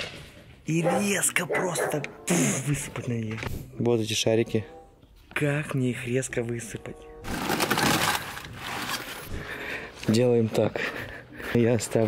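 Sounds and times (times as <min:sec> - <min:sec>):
mesh bag of balloons rustling: 0:07.3 - 0:09.5.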